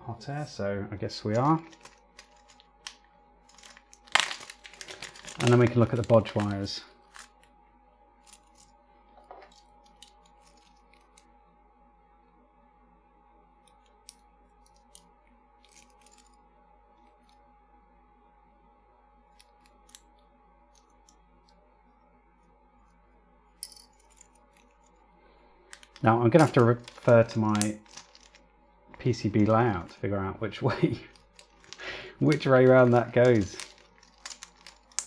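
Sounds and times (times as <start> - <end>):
faint steady hum: 0.0 - 35.0
small clicks and rustles: 1.3 - 7.5, 8.2 - 11.3, 25.7 - 29.9, 31.1 - 35.0.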